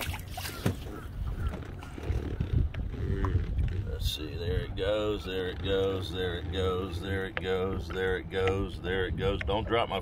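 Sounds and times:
object splashing into water: 0:00.0 - 0:00.9
low rumbling noise: 0:01.0 - 0:10.0.

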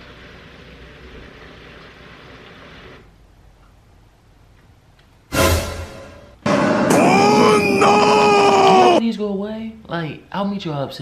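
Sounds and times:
rushing noise: 0:05.4 - 0:09.0
high vocal scream: 0:06.5 - 0:09.0.

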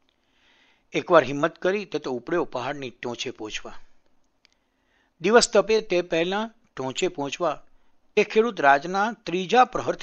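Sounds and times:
man narrating: 0:01.0 - 0:03.9, 0:05.2 - 0:10.0
faint clicks: 0:04.0 - 0:04.6.

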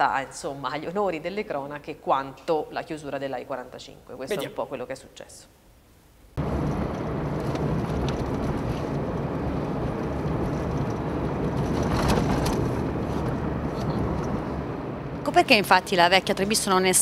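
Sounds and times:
car engine and tyre noise: 0:06.4 - 0:15.4.

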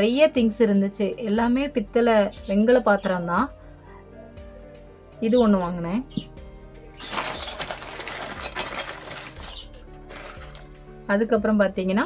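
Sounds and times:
paper bag rustling: 0:07.0 - 0:10.8.

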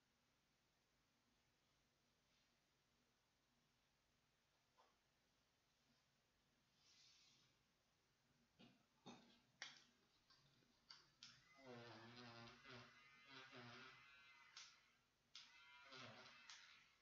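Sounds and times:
faint sharp clicks: 0:14.5 - 0:15.6.

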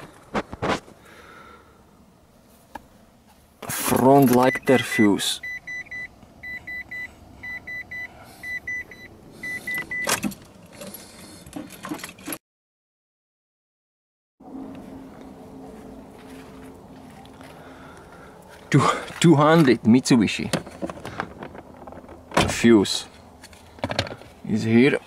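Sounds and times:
steady low hum: 0:00.0 - 0:12.4, 0:14.4 - 0:25.0
car warning chime beeping: 0:04.3 - 0:10.2.

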